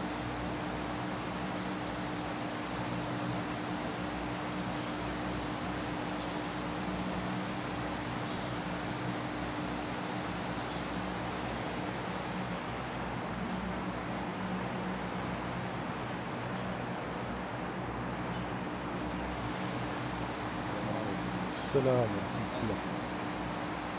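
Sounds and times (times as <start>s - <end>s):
electric fans whirring: 0.0s - 23.9s.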